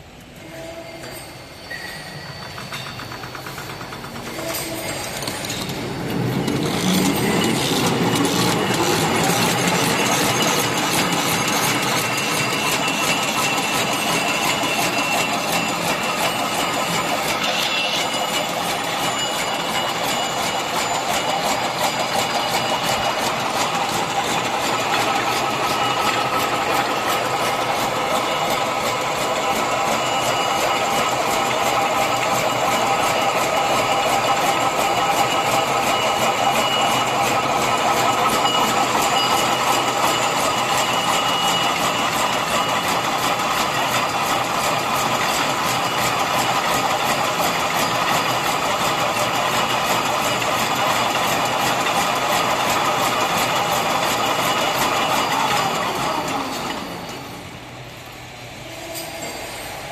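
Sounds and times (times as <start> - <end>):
machine whirring hum: 0.0 - 59.9
fast mechanical clatter: 2.1 - 57.6.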